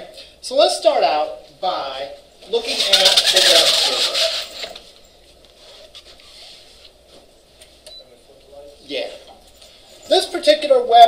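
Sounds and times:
projection screen scraping and rattling: 2.5s - 5.0s.

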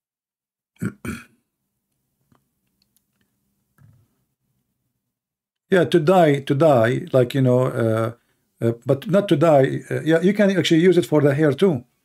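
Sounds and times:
person clearing throat: 0.8s - 1.4s.

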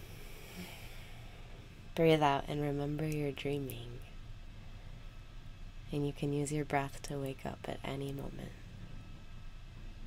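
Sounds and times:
person breathing in: 0.0s - 1.5s.

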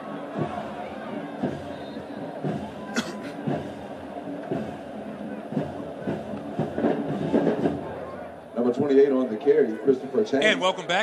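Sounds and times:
stadium crowd noise: 0.0s - 11.0s
drum hits: 0.3s - 8.0s.

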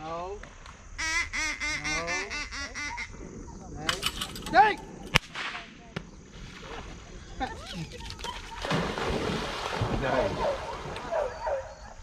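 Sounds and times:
dog yelping: 10.3s - 12.0s.

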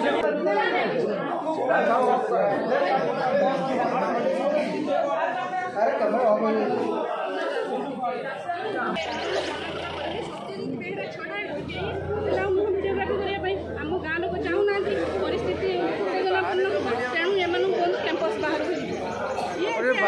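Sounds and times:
indistinct chatter of voices: 0.0s - 20.0s.

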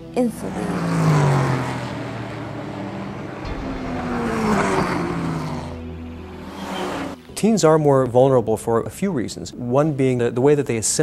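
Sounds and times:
tyre and road noise: 0.0s - 7.4s
cars driving past: 0.2s - 7.4s.

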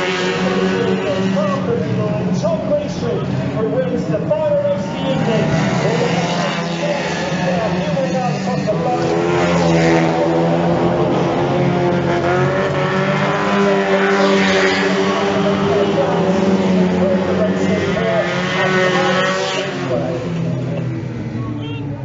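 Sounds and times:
racing car engines: 0.0s - 22.0s.

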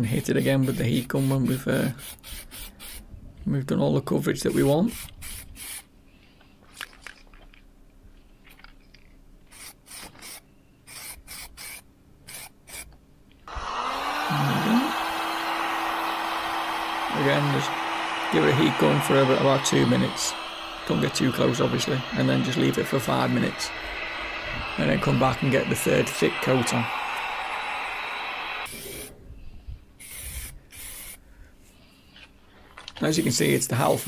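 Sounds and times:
heat gun blowing air: 0.3s - 3.0s, 4.5s - 5.8s, 13.5s - 29.1s, 30.0s - 31.2s.

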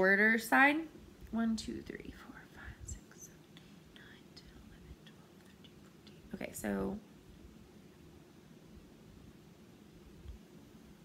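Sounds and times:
woman whispering: 1.9s - 6.9s.

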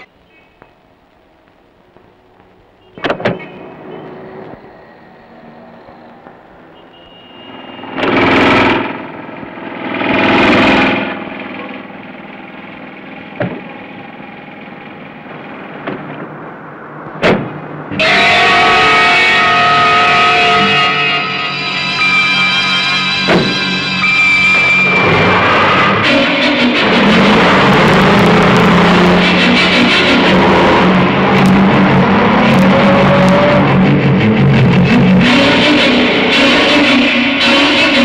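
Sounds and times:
distorted sustained chord: 17.9s - 38.0s
suspense film score: 17.9s - 38.0s
sharp music hits: 20.0s - 32.3s.

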